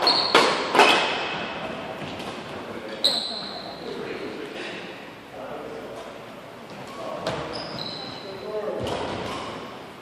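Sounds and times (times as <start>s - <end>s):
shoe squeak: 0.0s - 1.1s, 3.0s - 3.9s, 6.9s - 9.7s
voices in large hall: 0.0s - 10.0s.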